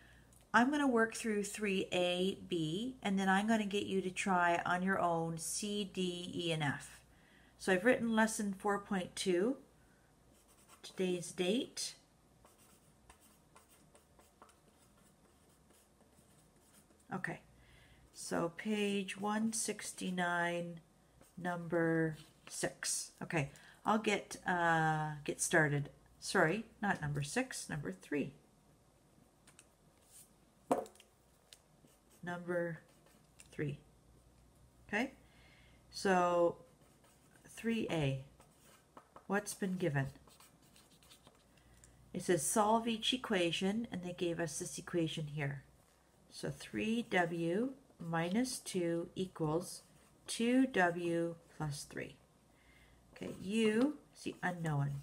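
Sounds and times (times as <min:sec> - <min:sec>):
pen scratching on paper: 0:10.3 - 0:11.0, 0:12.4 - 0:17.1, 0:31.8 - 0:33.4, 0:36.7 - 0:41.5.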